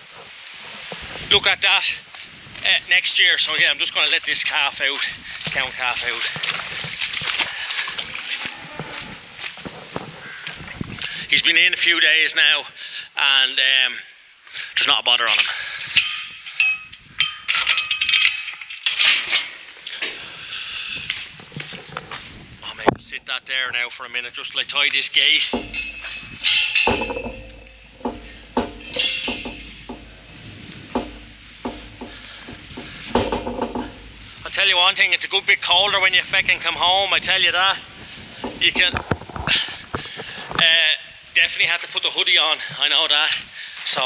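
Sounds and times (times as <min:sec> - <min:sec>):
rustling noise: 0:00.0 - 0:11.0, 0:18.4 - 0:23.2, 0:24.5 - 0:35.2, 0:35.8 - 0:40.7
man talking outdoors: 0:01.2 - 0:06.7, 0:11.0 - 0:15.9, 0:22.6 - 0:26.2, 0:31.6 - 0:44.0
metal gate clanking and rattling: 0:15.2 - 0:20.2, 0:25.0 - 0:34.4, 0:38.4 - 0:39.1
sharp metal knocks: 0:15.9 - 0:19.4, 0:25.2 - 0:34.3.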